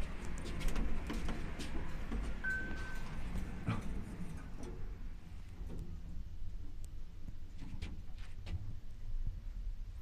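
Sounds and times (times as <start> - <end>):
elevator low steady hum: 0.0 - 7.3
elevator short electronic beep: 2.4 - 3.2.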